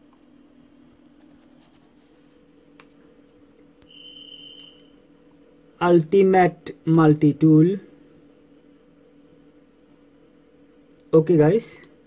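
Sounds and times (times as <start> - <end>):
electrical hum: 0.0 - 12.0
high-pitched whine: 3.8 - 5.2.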